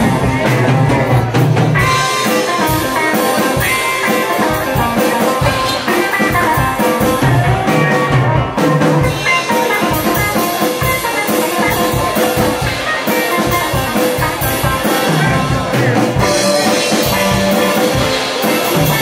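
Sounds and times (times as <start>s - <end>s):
drum kit beat: 0.0s - 19.0s
electric guitar playing: 0.0s - 19.0s.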